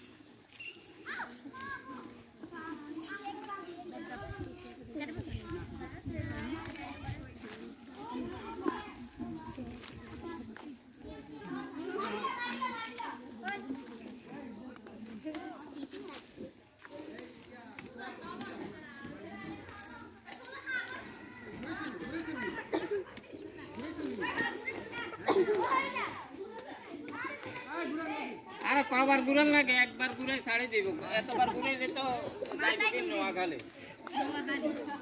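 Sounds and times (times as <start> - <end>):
children talking and calling out: 0.0 - 35.0.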